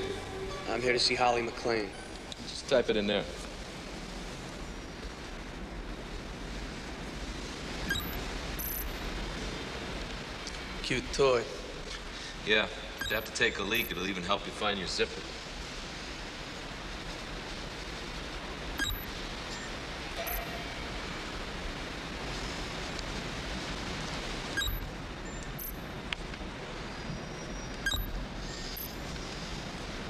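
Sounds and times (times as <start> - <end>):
steady background hiss: 0.0 - 30.0.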